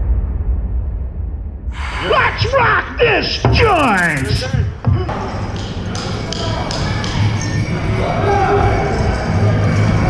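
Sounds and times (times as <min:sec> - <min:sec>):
voices: 0:02.1 - 0:04.8
drum beating steadily: 0:03.4 - 0:05.0.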